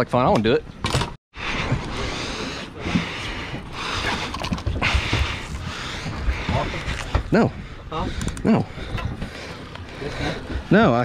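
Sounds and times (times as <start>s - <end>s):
wind buffeting microphone: 2.7s - 11.0s.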